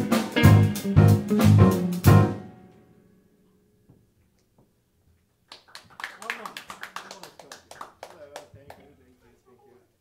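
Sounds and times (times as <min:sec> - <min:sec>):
hand claps: 0:05.5 - 0:08.9.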